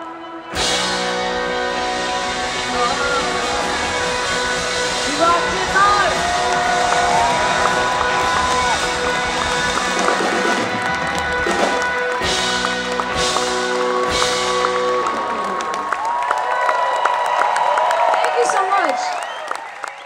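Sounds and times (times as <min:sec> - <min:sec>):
live pop-rock band: 0:00.0 - 0:16.3.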